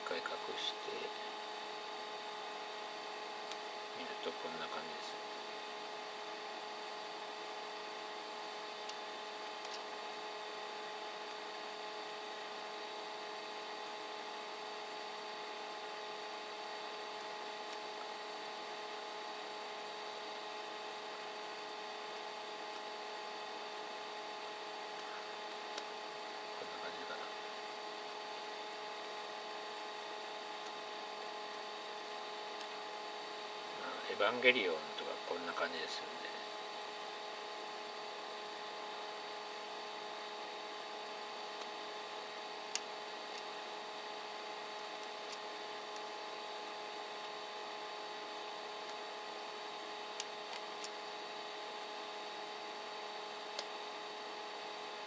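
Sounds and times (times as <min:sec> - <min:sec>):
electrical whine of equipment: 0:00.0 - 0:55.0.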